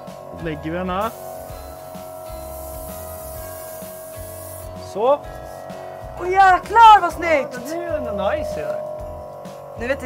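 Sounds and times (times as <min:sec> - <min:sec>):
airbrush spraying hiss: 0:00.0 - 0:06.1
background music with beat: 0:00.0 - 0:10.0.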